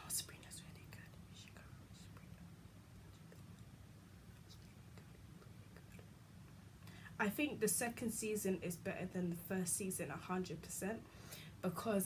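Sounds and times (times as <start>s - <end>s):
woman whispering: 0.0s - 3.5s, 4.4s - 6.1s
low steady hum: 0.0s - 12.0s.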